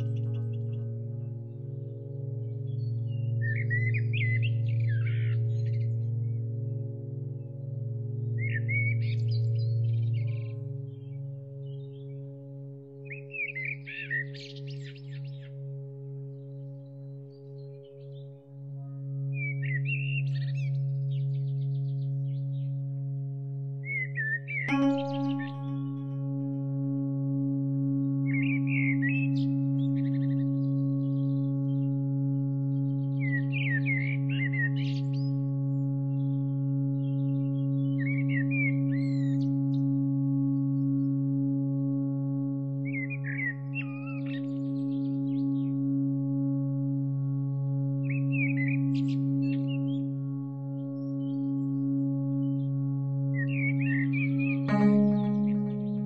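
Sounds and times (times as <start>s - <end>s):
chirping birdsong: 0.0s - 56.0s
low drone of held tones: 0.0s - 56.0s
bright struck tone: 24.7s - 26.4s, 54.7s - 56.0s.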